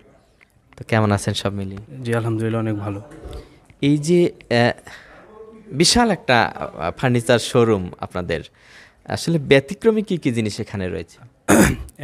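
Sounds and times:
man speaking: 0:00.8 - 0:08.5
throat clearing: 0:11.5 - 0:12.0.

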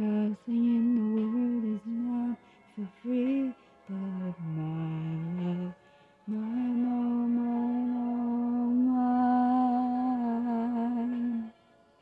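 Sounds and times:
faint karaoke backing track: 0:00.0 - 0:12.0
person humming a long note: 0:03.2 - 0:11.6.

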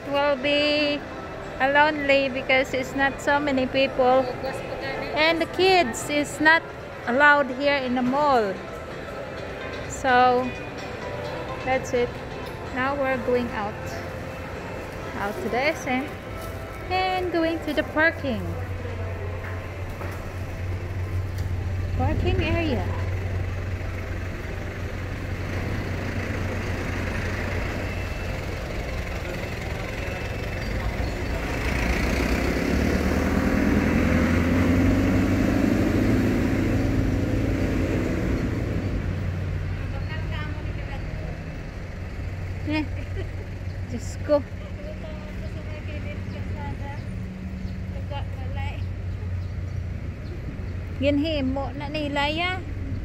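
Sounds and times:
low engine hum: 0:00.0 - 0:53.0
faint voices: 0:11.7 - 0:25.9
car driving past: 0:18.8 - 0:40.4.

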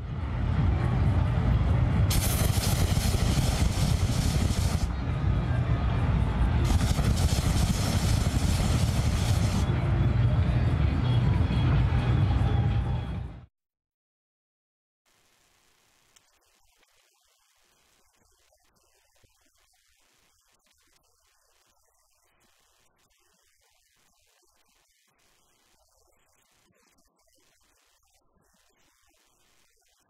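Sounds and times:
crowd voices: 0:00.4 - 0:13.3
flame effects whooshing: 0:02.1 - 0:05.0, 0:06.6 - 0:09.7.

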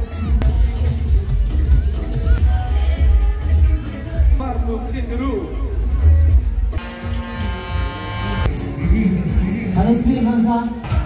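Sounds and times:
fairground music: 0:00.0 - 0:11.0
electric buzz: 0:06.8 - 0:08.5.

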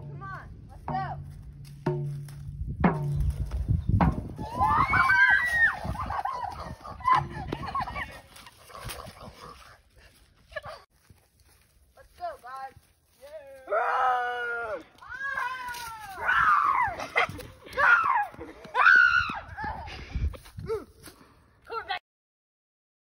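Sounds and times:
girls screaming: 0:04.4 - 0:07.2, 0:13.6 - 0:19.8.

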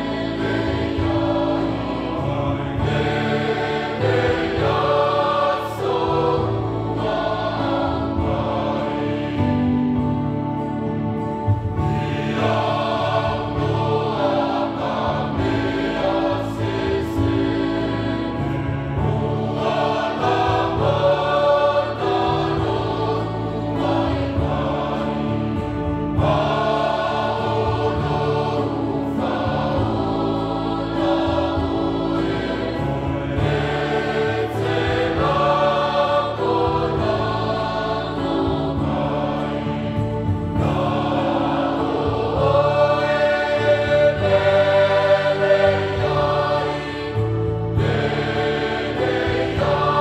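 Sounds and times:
choir singing a hymn: 0:00.0 - 0:50.0.

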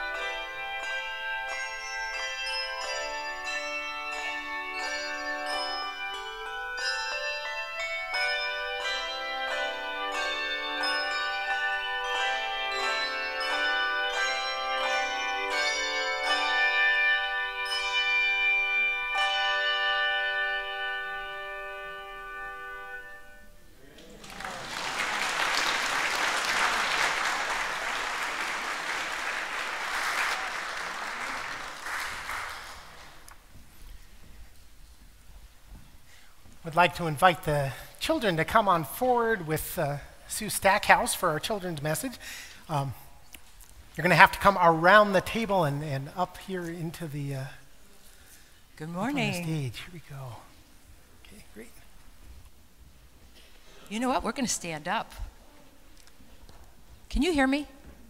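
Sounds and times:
handbell choir ringing: 0:00.0 - 0:23.4
congregation applauding: 0:24.0 - 0:33.4.

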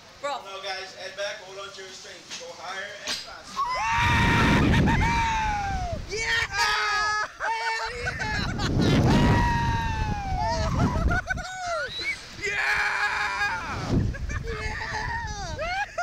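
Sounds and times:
people screaming and laughing: 0:03.6 - 0:06.0, 0:06.6 - 0:16.0
wind buffeting microphone: 0:03.8 - 0:06.6, 0:07.9 - 0:16.0.

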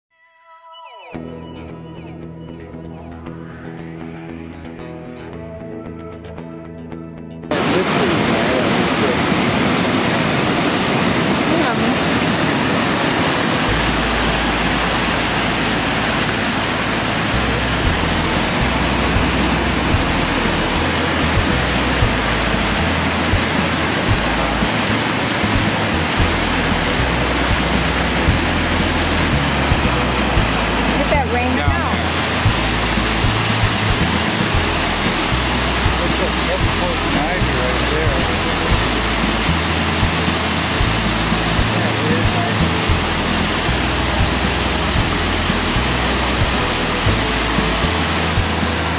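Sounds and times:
waterfall roaring: 0:07.5 - 0:48.9
low rumble: 0:13.7 - 0:48.9.

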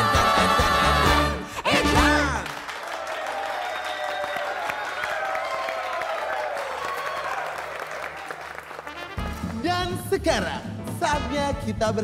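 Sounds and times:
person singing: 0:00.0 - 0:02.6
audience applauding: 0:01.7 - 0:09.6.

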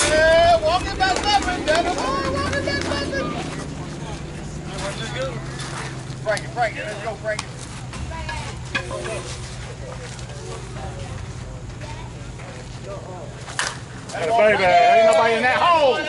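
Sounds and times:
distant players' voices: 0:00.0 - 0:16.0
low steady hum: 0:00.0 - 0:16.0.

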